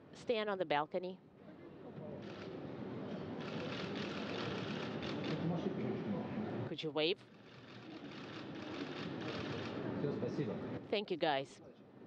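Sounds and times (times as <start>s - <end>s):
large hall background noise: 0.0s - 12.0s.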